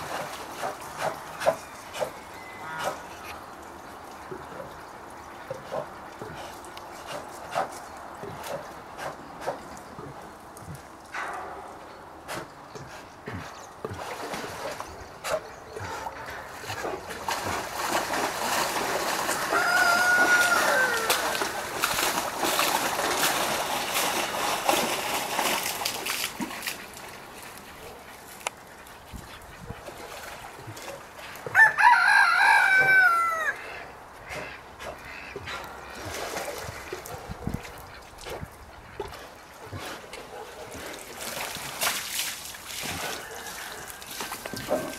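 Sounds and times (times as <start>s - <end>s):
water sloshing and splashing: 0.0s - 44.9s
water splashing in a tub: 13.9s - 15.0s, 16.7s - 28.5s, 40.7s - 44.9s
bird crowing call: 19.3s - 21.6s, 31.5s - 35.4s.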